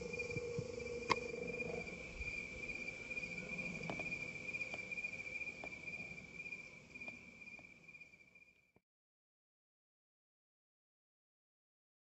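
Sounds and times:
crickets trilling: 0:00.0 - 0:08.7.

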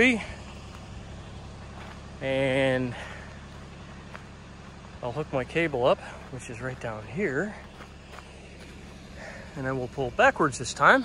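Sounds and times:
engine running with low hum: 0:00.0 - 0:11.0.

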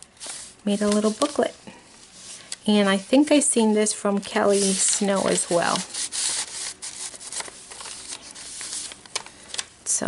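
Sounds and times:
paper rustling: 0:00.2 - 0:01.6, 0:04.1 - 0:09.7.

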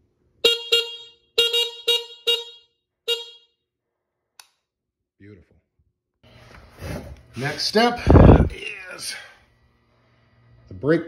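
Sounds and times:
short electric horn beeps: 0:00.4 - 0:03.5
click: 0:04.4 - 0:04.6.

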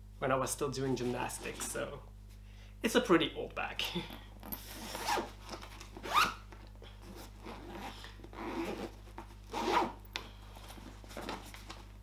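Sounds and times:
zipper on fabric bag: 0:04.5 - 0:05.3, 0:06.0 - 0:06.4, 0:07.0 - 0:10.0.

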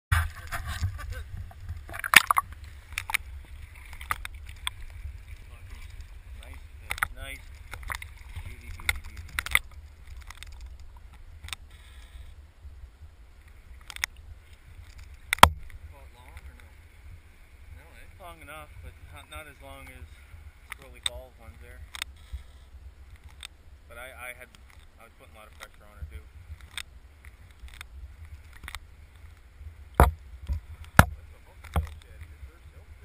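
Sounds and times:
muffled underwater river rumble: 0:00.1 - 0:33.0
sharp clicks and knocks: 0:06.4 - 0:11.6, 0:14.8 - 0:16.5, 0:30.0 - 0:32.3.

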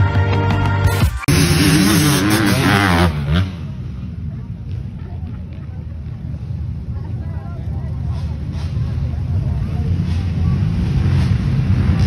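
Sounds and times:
music: 0:00.0 - 0:01.6
off-road vehicle engine revving: 0:01.3 - 0:12.0.

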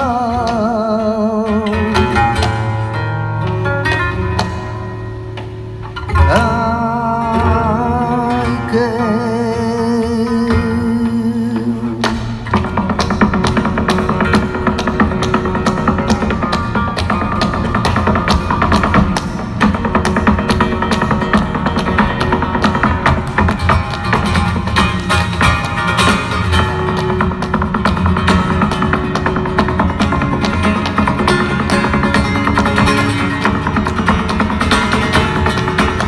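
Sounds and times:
flamenco guitar: 0:00.0 - 0:36.0
heeled shoes striking stage: 0:01.9 - 0:06.2, 0:12.0 - 0:36.0.

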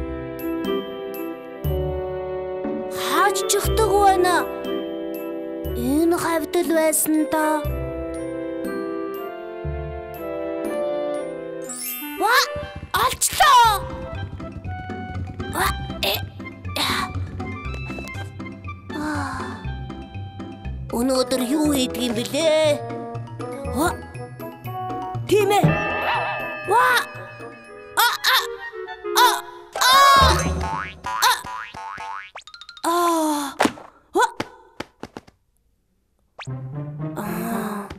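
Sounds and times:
light background music: 0:00.0 - 0:30.8
cartoon music with bass line: 0:23.6 - 0:32.7, 0:36.4 - 0:37.3
plinking tones: 0:25.6 - 0:28.8
comic sound effects: 0:25.6 - 0:31.6
high cartoon voice: 0:28.0 - 0:30.5
cartoon spring boing effects: 0:30.0 - 0:32.4.

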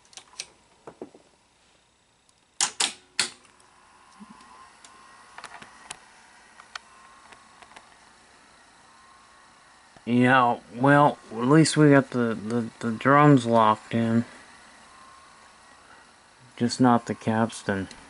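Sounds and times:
faint high whine: 0:00.0 - 0:18.0.

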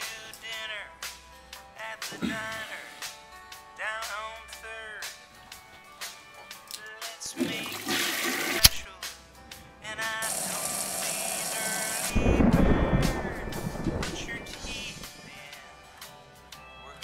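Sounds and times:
film music: 0:09.6 - 0:16.7
loud low rumble: 0:12.2 - 0:15.1.

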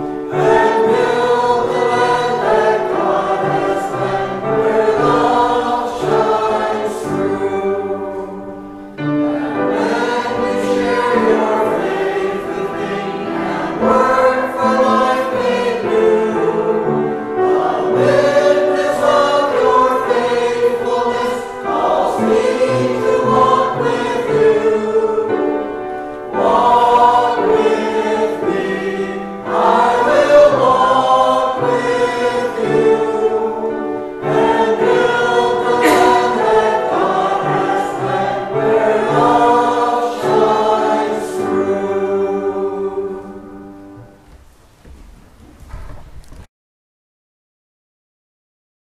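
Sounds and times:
choir singing a hymn: 0:00.0 - 0:44.3.

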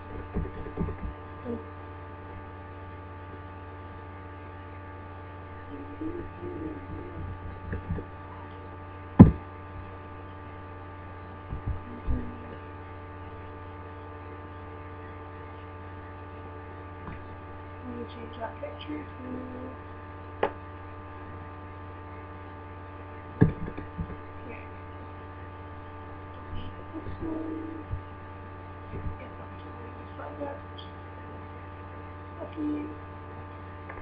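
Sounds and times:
electrical hum: 0:00.0 - 0:34.0
sharp knocks: 0:09.2 - 0:09.4, 0:23.4 - 0:24.2.

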